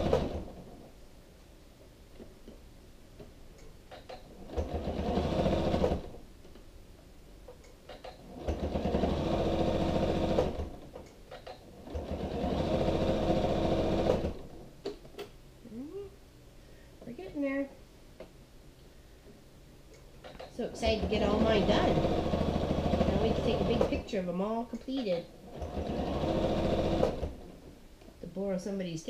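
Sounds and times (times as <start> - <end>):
sewing machine stitching: 0.0 - 0.7, 3.9 - 6.2, 7.9 - 14.6, 20.2 - 24.1, 25.0 - 27.6.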